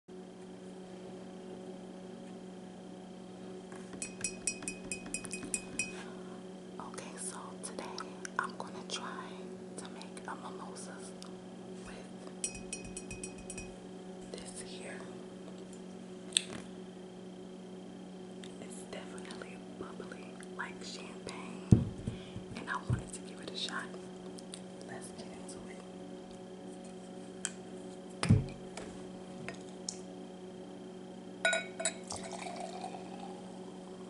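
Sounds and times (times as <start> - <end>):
fingernails tapping on glass: 4.0 - 6.0, 12.4 - 13.7.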